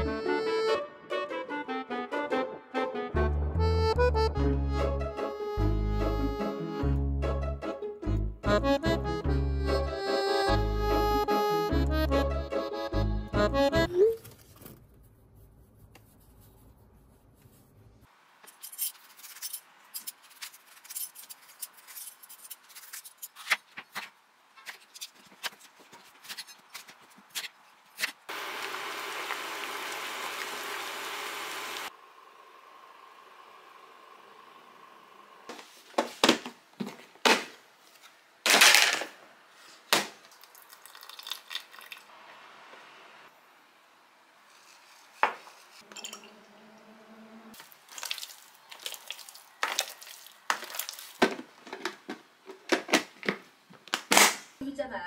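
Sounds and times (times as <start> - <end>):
glass and utensil clinks: 45.9 - 46.4.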